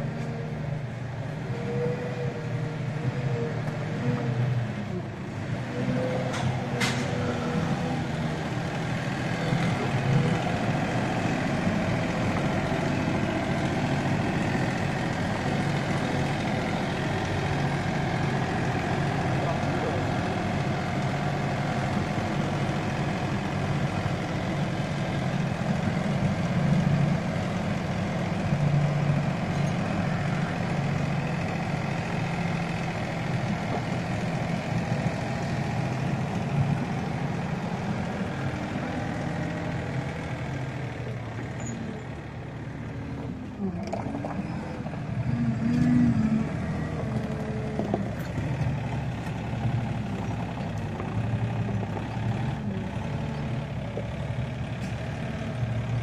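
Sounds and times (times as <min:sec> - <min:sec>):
diesel engine idling: 0:00.0 - 0:56.0.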